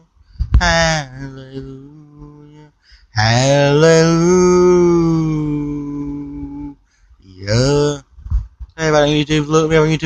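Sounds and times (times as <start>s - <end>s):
man singing long held note: 0.0s - 6.8s, 7.4s - 8.0s.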